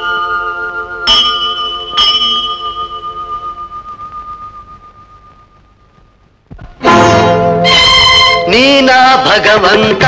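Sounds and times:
large metal bell ringing: 0.0 - 5.9, 6.8 - 8.9.

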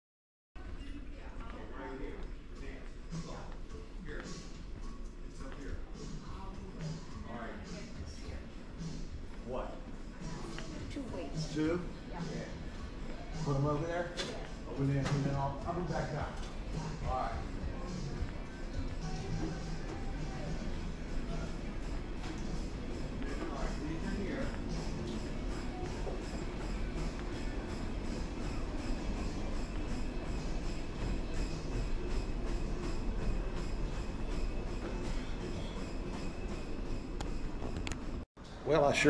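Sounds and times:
gym room rumble: 0.6 - 38.2
faint background music: 0.6 - 39.0.

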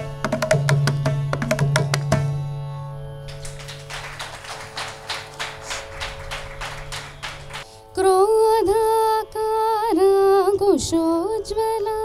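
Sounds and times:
small audience applauding: 3.3 - 7.6.

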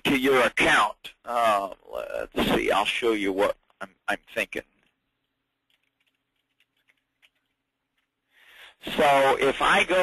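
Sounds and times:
faint keyboard typing: 4.7 - 8.4.

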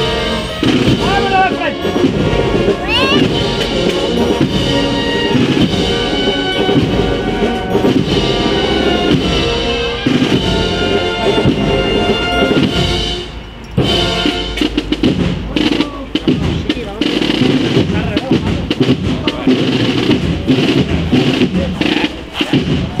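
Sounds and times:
processional brass band music: 0.0 - 23.0
voices: 0.0 - 23.0.

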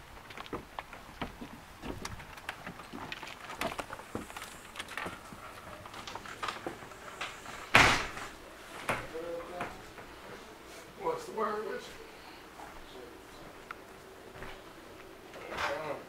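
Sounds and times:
footsteps on wooden steps: 0.0 - 10.4, 13.5 - 15.1
door banging shut: 7.7 - 8.3
door being handled: 7.7 - 8.3.

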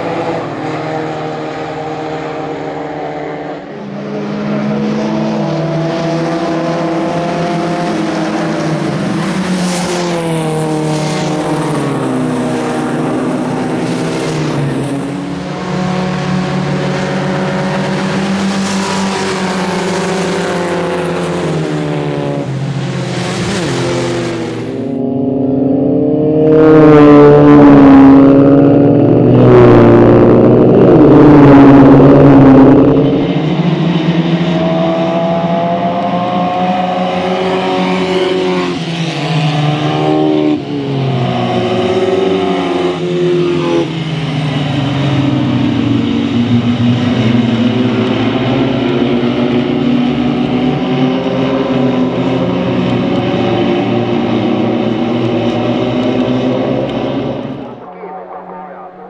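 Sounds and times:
car passing close: 0.0 - 59.0
racing car engines: 0.0 - 59.0.

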